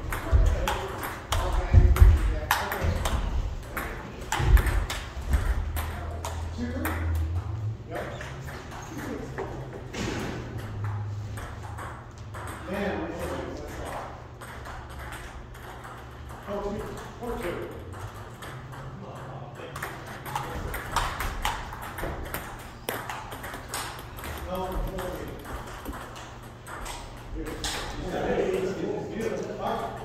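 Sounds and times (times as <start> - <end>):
ping pong ball hitting paddles and table: 0.0 - 30.0.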